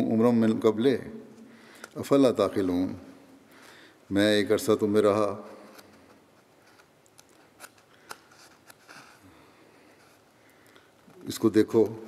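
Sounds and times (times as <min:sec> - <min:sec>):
soft rustle: 0:05.5 - 0:11.8.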